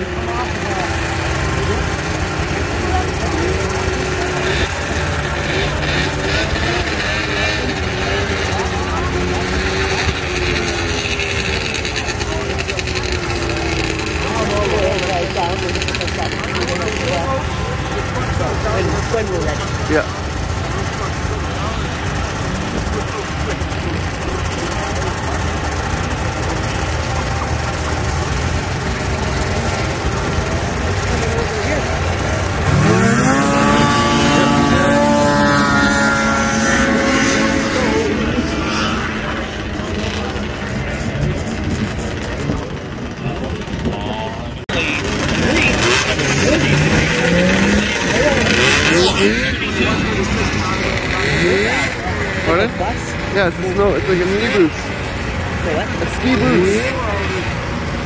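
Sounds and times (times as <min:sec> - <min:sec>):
snowmobile engines revving: 0:00.0 - 0:58.0.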